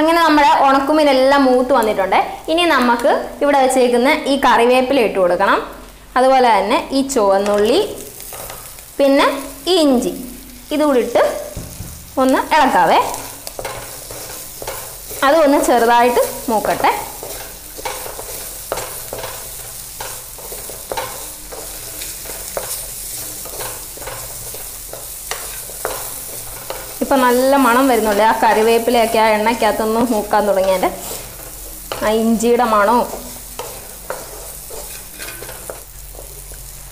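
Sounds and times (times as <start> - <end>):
food sizzling in oil: 0.0 - 36.9
wooden spatula scraping pan: 32.8 - 36.4.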